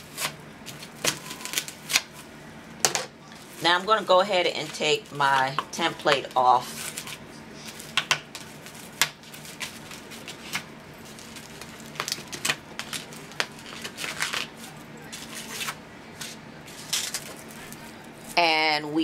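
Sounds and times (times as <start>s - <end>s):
paper rustling and crinkling: 6.6s - 18.4s.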